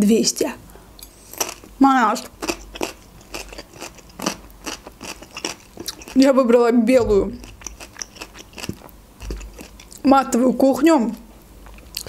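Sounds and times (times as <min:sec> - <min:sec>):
close chewing with mouth clicks: 0:02.4 - 0:06.2, 0:07.4 - 0:10.0.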